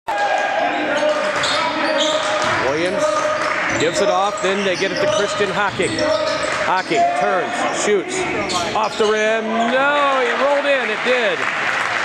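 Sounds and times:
crowd voices: 0.1s - 12.0s.

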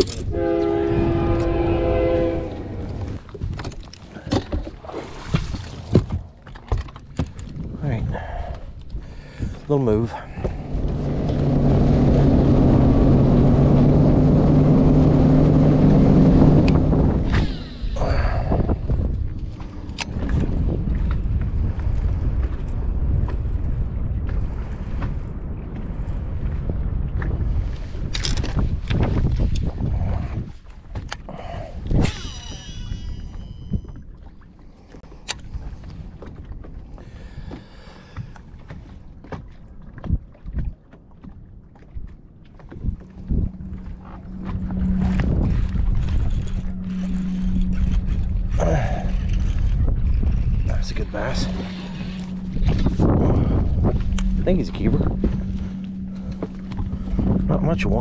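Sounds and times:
outboard engine droning: 0.0s - 58.0s
water and hull noise: 0.0s - 58.0s.

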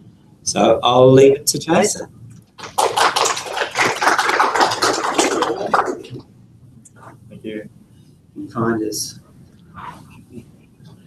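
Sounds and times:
audience applauding: 2.6s - 6.2s.

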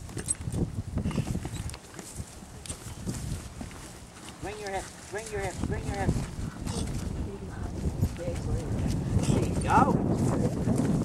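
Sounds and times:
horse hooves on grass: 0.0s - 11.0s.

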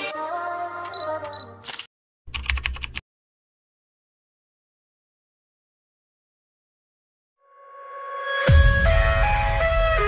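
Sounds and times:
background music: 8.0s - 10.0s.

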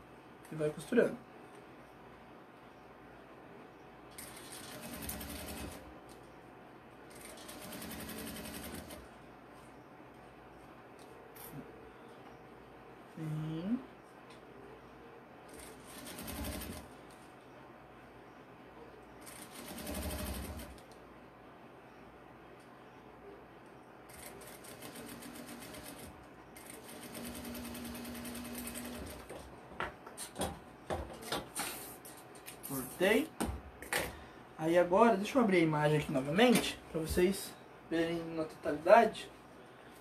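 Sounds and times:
sewing machine stitching: 7.1s - 9.0s, 15.5s - 16.8s, 19.2s - 20.8s, 24.1s - 29.3s.

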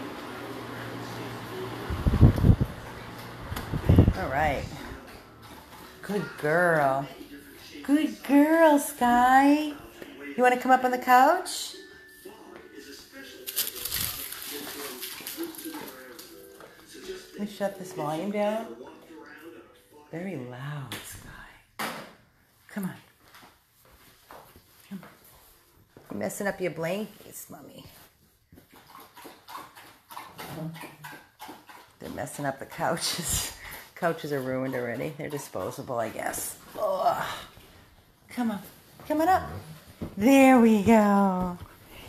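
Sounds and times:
faint voices from tv or radio: 0.0s - 42.0s
rustling and scuffing: 23.2s - 26.2s.

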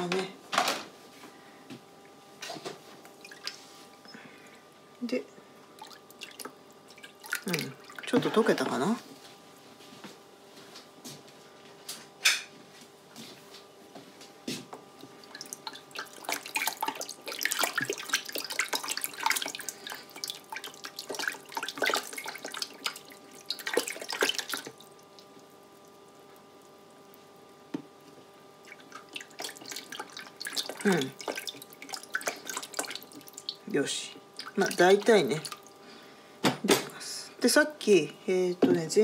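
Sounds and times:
spatula stirring water: 5.8s - 9.0s, 14.9s - 35.9s.

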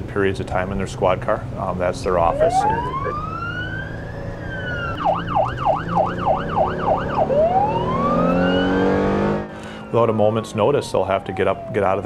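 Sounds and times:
police siren wail and yelp: 2.0s - 12.0s.

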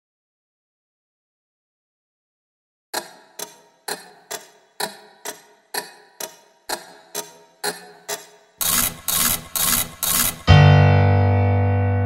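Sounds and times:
sharp ringing ticks: 3.0s - 10.5s.

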